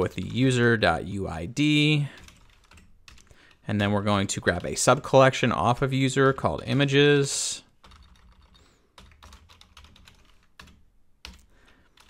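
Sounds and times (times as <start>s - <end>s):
keyboard typing: 2.1s - 4.9s, 7.8s - 12.0s.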